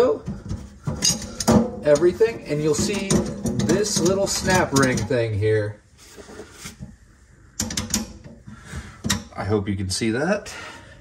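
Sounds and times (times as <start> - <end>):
metal hardware clinking and rattling: 0.2 - 5.3, 7.6 - 8.4.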